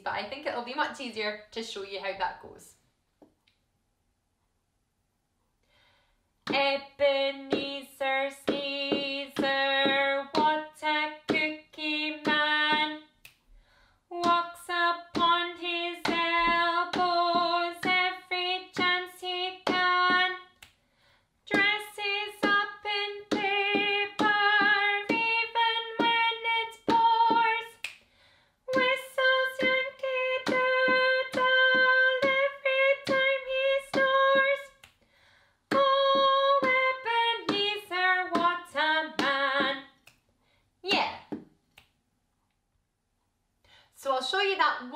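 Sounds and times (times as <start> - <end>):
woman singing: 6.5 - 13.2, 14.1 - 20.6, 21.5 - 27.9, 28.7 - 34.8, 35.7 - 40.0.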